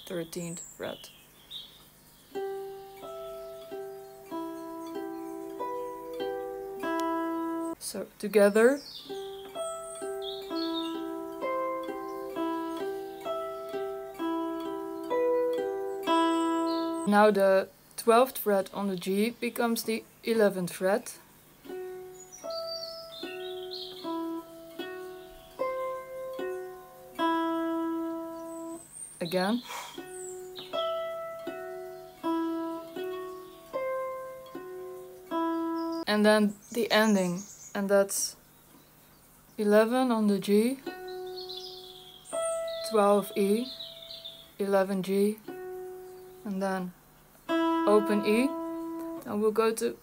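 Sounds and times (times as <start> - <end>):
electric guitar picked notes: 2.4 - 7.8, 9.0 - 17.4, 21.8 - 28.8, 47.4 - 49.9.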